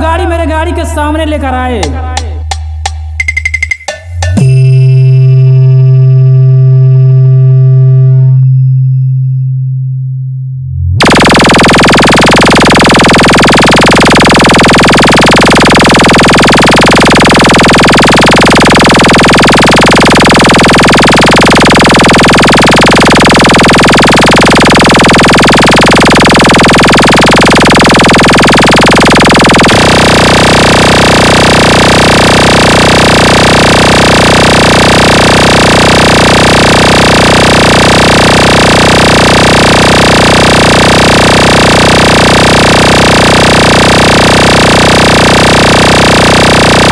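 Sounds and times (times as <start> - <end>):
loud held bass tone: 4.3 - 33.4.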